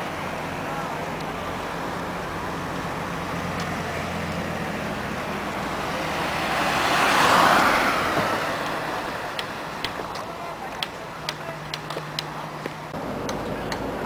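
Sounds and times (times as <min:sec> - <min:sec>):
car engine hum and road noise: 0:00.0 - 0:14.0
passing vehicle: 0:00.0 - 0:14.0.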